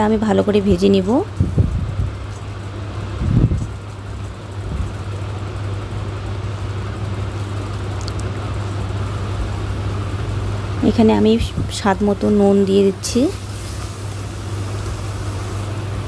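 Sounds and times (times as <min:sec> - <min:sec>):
onion frying in oil: 0:00.0 - 0:16.0.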